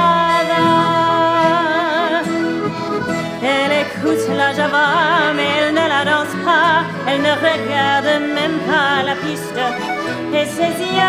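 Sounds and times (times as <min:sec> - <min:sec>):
person singing: 0:00.0 - 0:11.0
piano accordions playing chords: 0:00.0 - 0:11.0.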